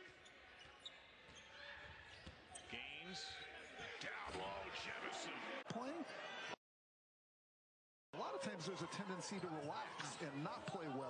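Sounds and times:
low arena crowd noise: 8.2 - 11.0.

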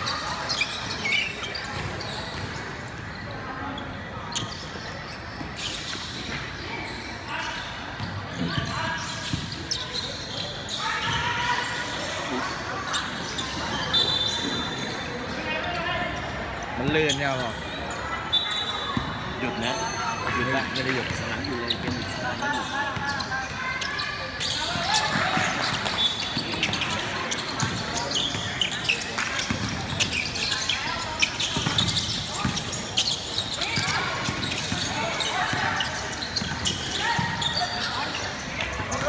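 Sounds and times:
voices echoing in hall: 0.0 - 39.0
basketball bouncing on wooden court: 29.4 - 30.1.

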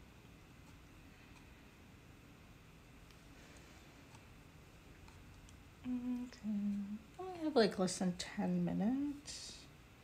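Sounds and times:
woman humming: 5.8 - 7.2.

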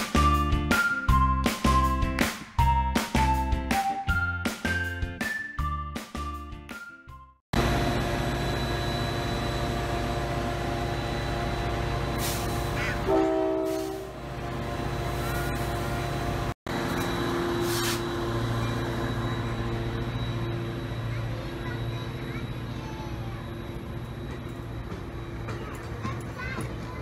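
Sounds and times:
diesel locomotive engine drone: 7.5 - 27.0
train horn blast: 12.8 - 14.2.

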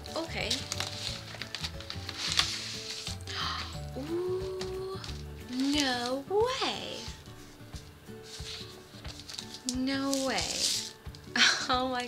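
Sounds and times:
plastic wrapper rustling: 0.0 - 3.4, 4.3 - 12.0
quiet background music: 0.0 - 12.0.

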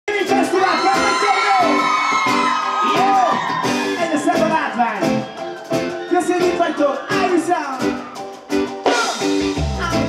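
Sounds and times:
live band playing amplified music: 0.1 - 10.0.

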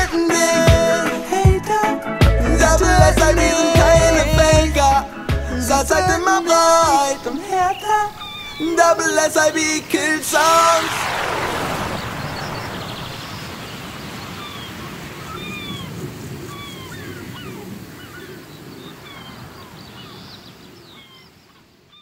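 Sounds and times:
high gliding chirps: 6.2 - 14.8
steady noisy hiss: 6.2 - 16.6.

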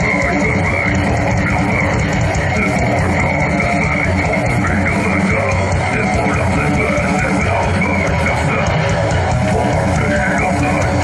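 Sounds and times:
heavy metal band playing live: 0.0 - 11.0
singer's vocals: 0.0 - 11.0.

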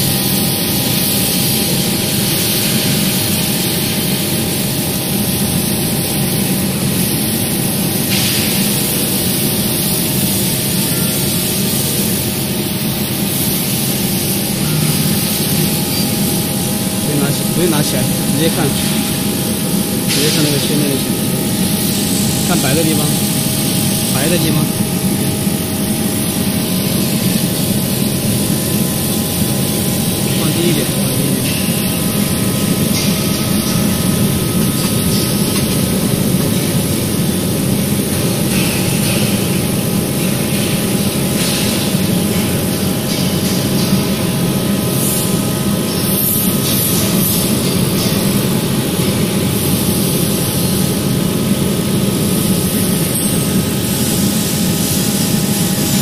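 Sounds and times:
workshop machinery droning: 0.0 - 56.0.

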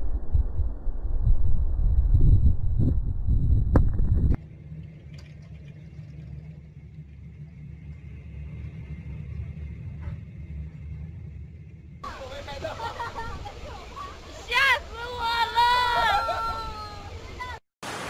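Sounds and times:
low steady rumble: 0.0 - 16.0
voices talking: 12.0 - 17.6.

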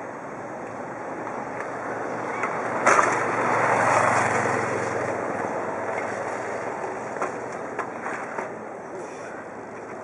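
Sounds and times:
passing vehicle rushing: 1.7 - 8.4.

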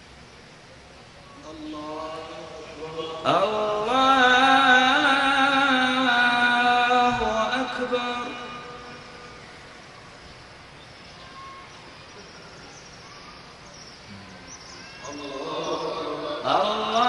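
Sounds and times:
faint steady hum: 0.0 - 17.0
man chanting over loudspeaker: 1.4 - 9.4, 15.0 - 17.0.

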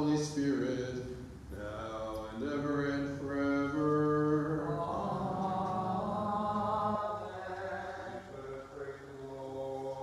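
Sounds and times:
male voices chanting: 0.0 - 10.0.

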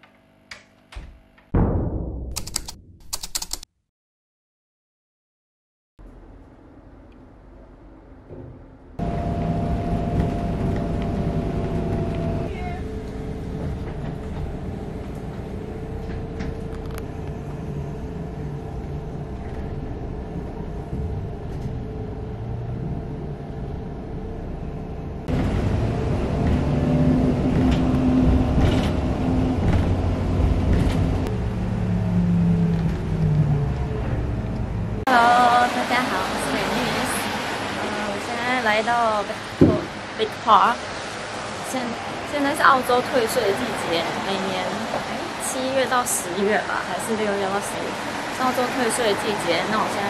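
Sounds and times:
bus engine running: 6.0 - 50.0
road noise: 6.0 - 50.0.

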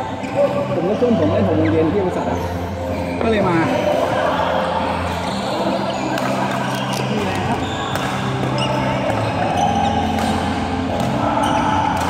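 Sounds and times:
rackets striking shuttlecock: 6.1 - 12.0.

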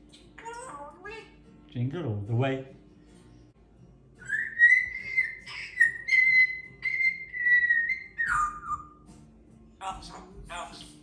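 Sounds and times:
parrot whistling: 4.2 - 9.1.

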